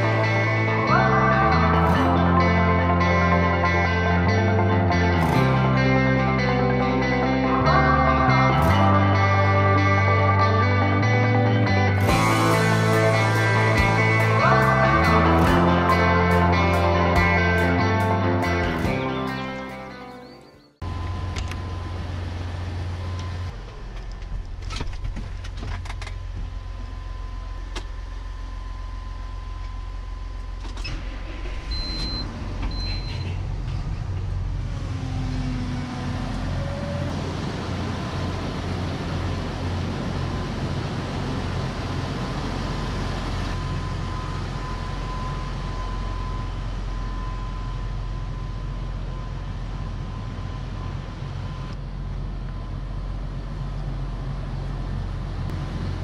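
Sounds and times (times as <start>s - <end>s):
tractor diesel engine running: 0.0s - 56.0s
short electronic beeps: 31.7s - 33.4s.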